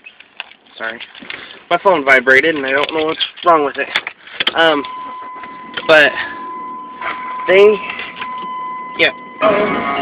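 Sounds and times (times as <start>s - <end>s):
steady high tone: 4.7s - 10.0s
man speaking: 5.8s - 6.4s, 7.4s - 8.1s, 8.9s - 9.6s.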